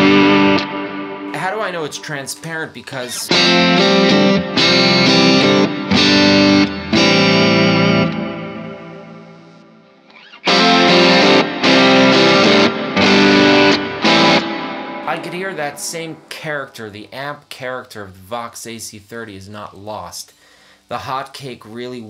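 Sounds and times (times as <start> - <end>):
overdriven electric guitar chords: 0.0 - 1.4, 3.3 - 16.8.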